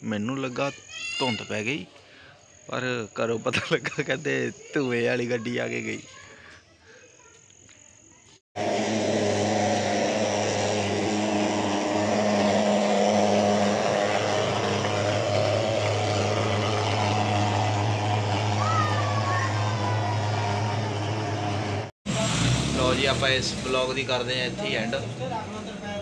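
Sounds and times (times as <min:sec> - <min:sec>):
fogging machine engine drone: 0:08.6 - 0:24.8.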